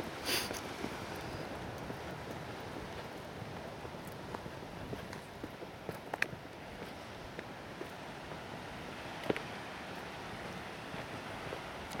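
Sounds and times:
sea surf: 0.0s - 12.0s
wind: 0.0s - 12.0s.

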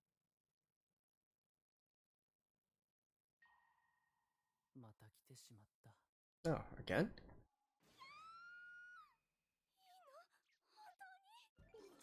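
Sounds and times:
high-pitched wailing cry: 8.0s - 9.2s.

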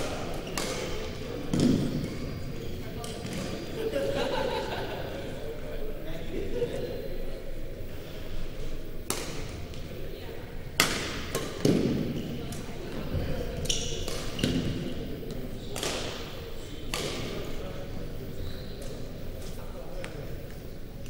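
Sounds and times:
sneakers squeaking on court: 0.2s - 3.7s, 13.6s - 17.3s.

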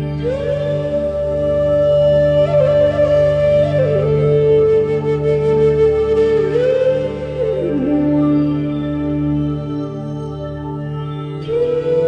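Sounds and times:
bamboo flute melody: 0.0s - 12.0s.

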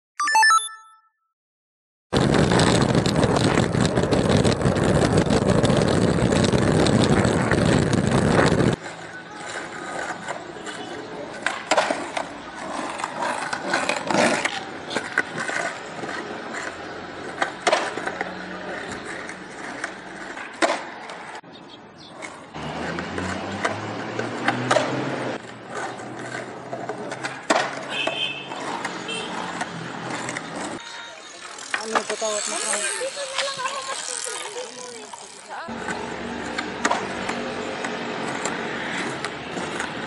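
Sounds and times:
skateboard wheels rolling on concrete: 2.1s - 40.0s
skateboard clacks: 2.3s - 21.4s, 22.1s - 33.8s, 35.7s - 40.0s.

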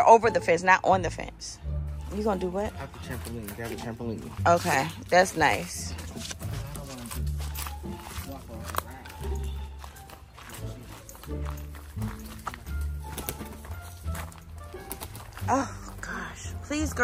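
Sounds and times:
background music with deep bass: 0.0s - 17.0s.

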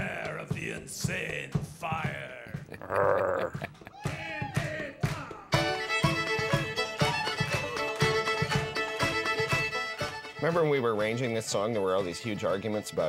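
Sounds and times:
banjo strumming: 5.5s - 13.0s
fiddles playing tune: 5.5s - 13.0s
folk band playing: 5.5s - 13.0s.

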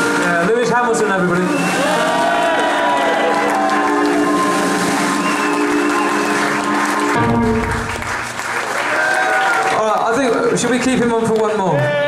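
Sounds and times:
audience whooping and shouting: 1.4s - 10.0s
distorted electric guitar chord: 3.2s - 8.5s.

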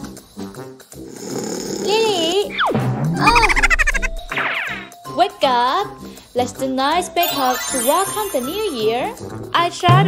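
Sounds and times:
cartoon snore: 1.0s - 2.4s.

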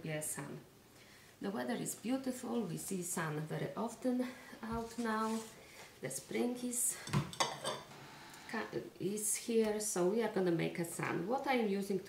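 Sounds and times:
ceramic dish clinking on table: 7.1s - 7.9s.

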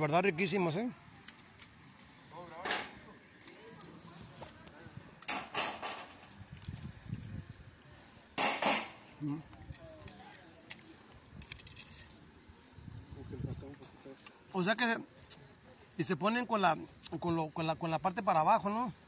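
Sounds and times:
faint voices: 0.0s - 11.3s
tongs scraping through stones: 9.2s - 12.2s.

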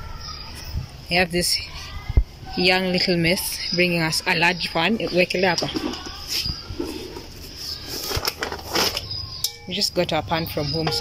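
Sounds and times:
scraping: 5.0s - 9.9s
rustling handling noise: 5.4s - 9.4s.

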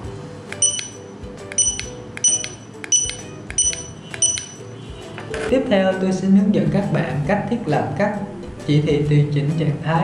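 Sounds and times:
scanner click: 0.5s - 4.7s
barcode scanner beeps: 0.5s - 4.8s.

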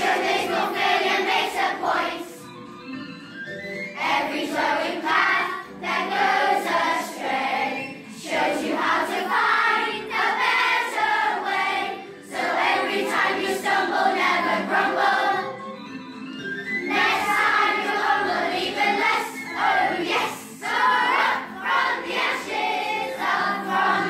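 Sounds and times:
children's choir singing: 0.0s - 2.6s, 3.9s - 15.8s, 16.8s - 24.0s.

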